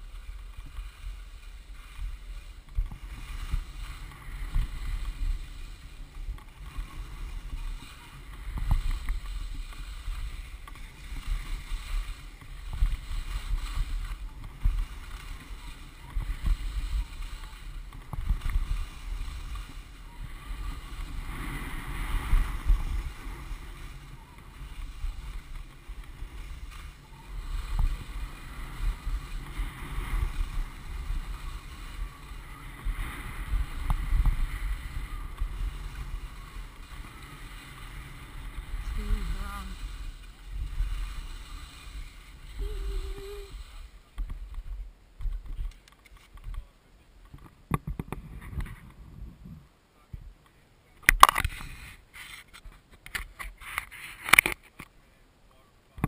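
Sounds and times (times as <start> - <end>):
wind buffeting microphone: 0.0 - 45.7, 47.6 - 50.3
skis scraping on packed snow: 0.0 - 56.0.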